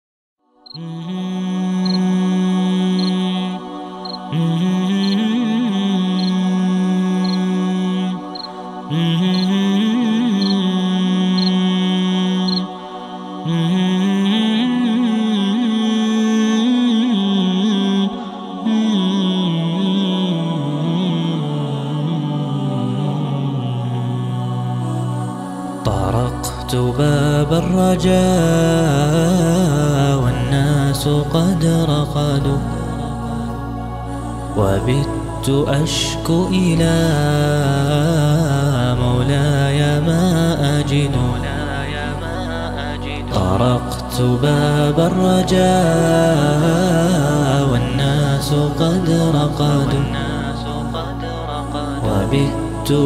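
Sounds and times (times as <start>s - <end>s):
male voices humming a melody: 0.7s - 14.7s
low vocal drone: 0.7s - 53.0s.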